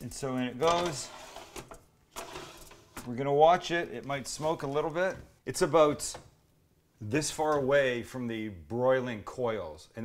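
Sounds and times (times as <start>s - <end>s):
metal pan scraping on oven rack: 0.7s - 2.9s.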